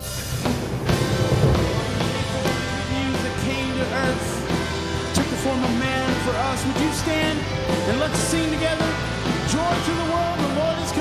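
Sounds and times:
bass: 0.0s - 11.0s
drum kit: 0.0s - 11.0s
electric guitar: 0.0s - 11.0s.

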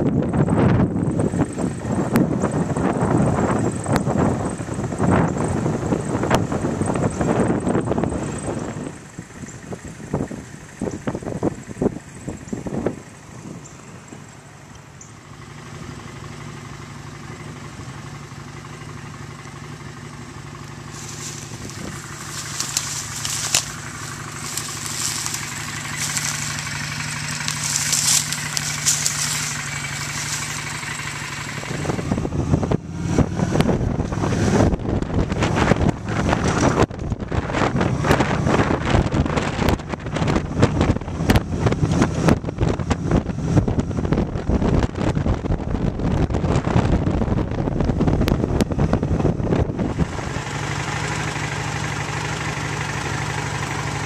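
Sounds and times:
wind buffeting microphone: 0.0s - 14.4s, 20.9s - 50.6s
vehicle engine humming: 0.0s - 54.0s.

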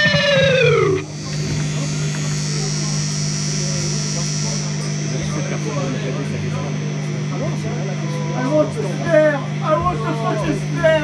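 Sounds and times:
electric guitar note sliding down: 0.0s - 2.1s
amplifier hum: 0.0s - 11.0s.

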